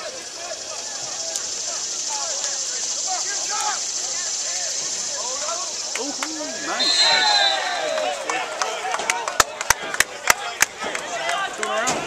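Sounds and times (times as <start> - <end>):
people talking: 0.0 - 12.0
sharp claps: 5.8 - 6.6, 7.5 - 12.0.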